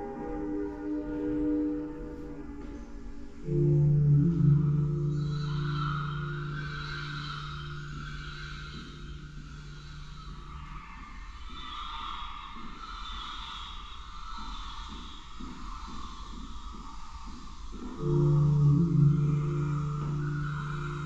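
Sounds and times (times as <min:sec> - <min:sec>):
hazy sustained high tones: 0:00.0 - 0:16.4, 0:17.7 - 0:21.0
low electronic drone: 0:03.4 - 0:10.9, 0:18.0 - 0:21.0.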